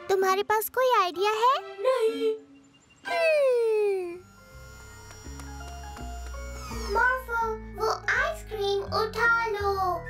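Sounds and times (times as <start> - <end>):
cartoon music with bass notes: 5.2 - 10.0.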